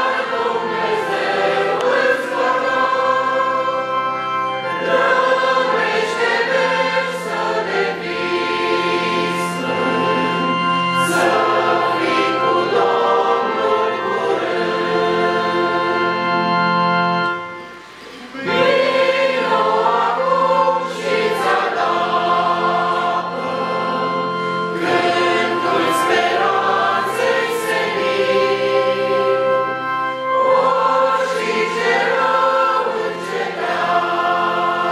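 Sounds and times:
congregation singing a hymn: 0.0 - 34.9.

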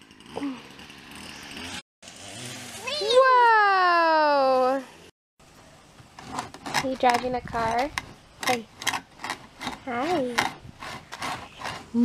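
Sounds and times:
outdoor background noise: 0.0 - 12.0
child's voice: 2.8 - 4.8, 9.9 - 10.5.

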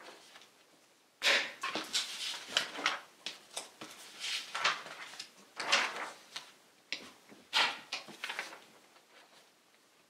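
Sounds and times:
notebook page rustling: 1.7 - 9.5.

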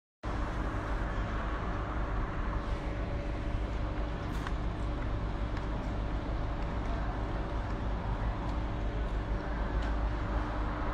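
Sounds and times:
road traffic rumble: 0.3 - 10.9.

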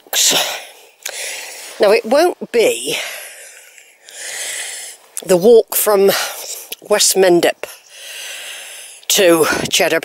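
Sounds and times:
woman breathing: 0.4 - 1.8, 2.9 - 5.0, 7.8 - 9.6.

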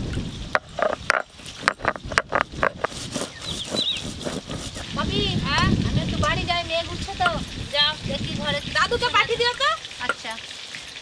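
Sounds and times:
stone roller tapping on stone slab: 0.5 - 4.6.

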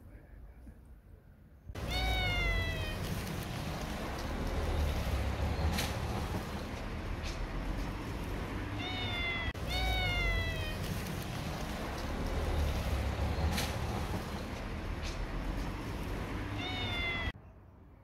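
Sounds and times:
cat meowing: 1.8 - 3.8, 8.7 - 11.4, 16.5 - 17.4.

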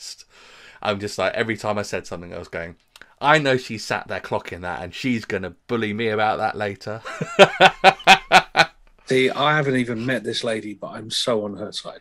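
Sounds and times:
man laughing: 7.0 - 8.7.

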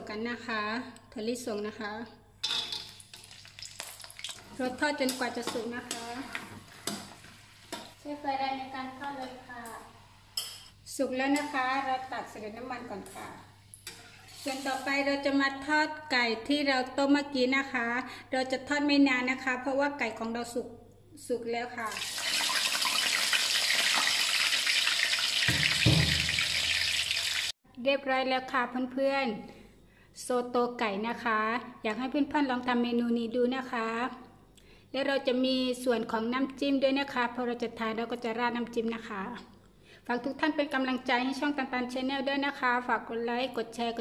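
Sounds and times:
peanuts sizzling in hot oil: 2.5 - 8.1, 21.9 - 27.6.

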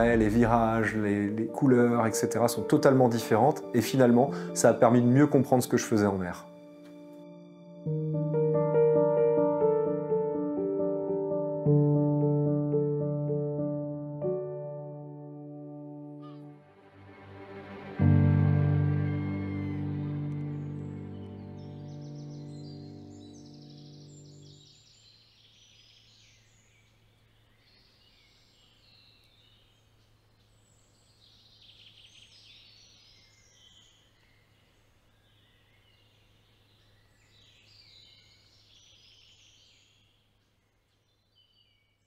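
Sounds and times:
background music: 0.0 - 24.4
songbirds chirping and trilling: 19.0 - 42.0.

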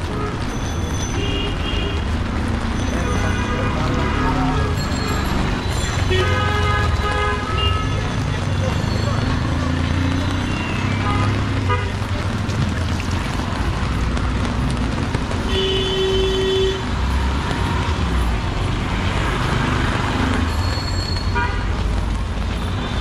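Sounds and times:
traffic and tyres on wet road: 0.0 - 23.0
vehicle horn: 15.5 - 16.8, 21.4 - 21.7.

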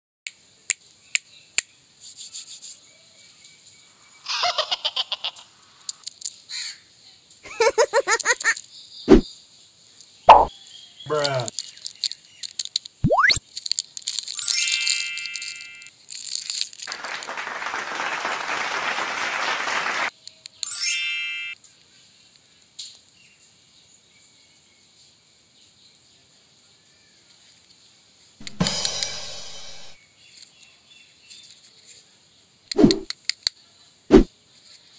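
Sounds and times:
drum hit with crashing cymbal: 28.4 - 30.0.

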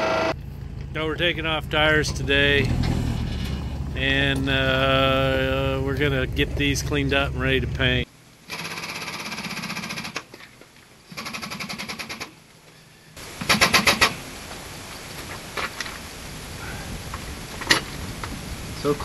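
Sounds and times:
faint steady noise: 0.0 - 19.0
pneumatic impact wrench: 8.5 - 10.2, 11.1 - 12.3, 13.4 - 14.2.

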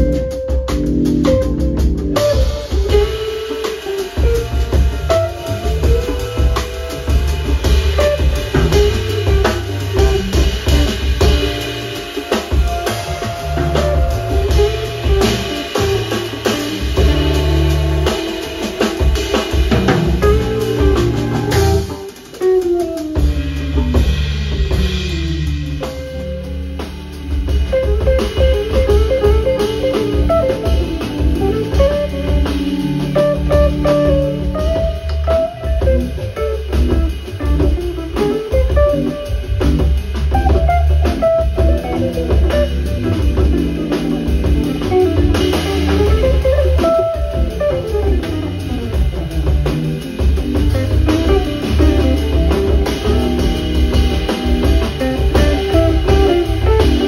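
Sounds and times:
congas: 0.0 - 57.0
drum kit: 0.0 - 57.0
electric guitar melody: 0.0 - 57.0
steady low bass: 4.2 - 12.0, 12.6 - 18.5, 19.2 - 22.0, 23.2 - 57.0.

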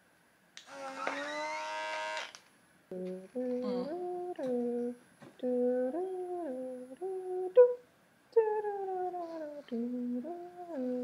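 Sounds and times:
small suction pump whining: 0.6 - 2.4.

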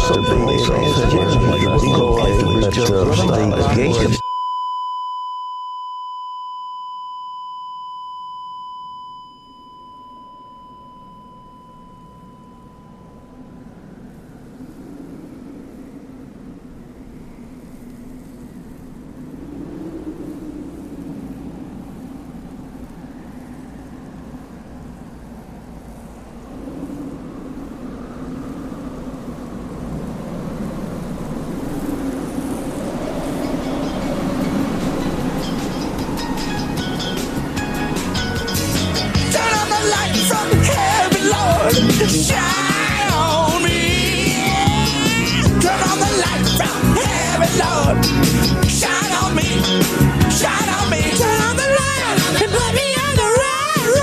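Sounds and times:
low rumbling noise: 0.0 - 4.2, 8.7 - 54.0
electronic beep tone: 0.0 - 13.4.

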